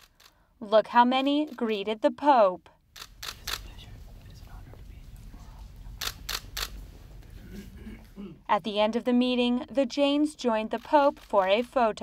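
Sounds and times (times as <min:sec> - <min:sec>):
camera shutter clicks: 0:03.0 - 0:03.6, 0:06.0 - 0:06.8.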